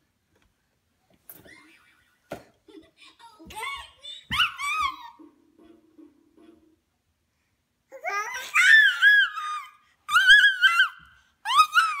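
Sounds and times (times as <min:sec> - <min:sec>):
baby squealing and laughing: 0:08.0 - 0:12.0.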